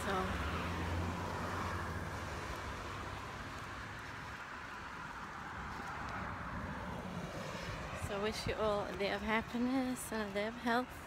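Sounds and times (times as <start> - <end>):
constant rush: 0.0 - 11.0.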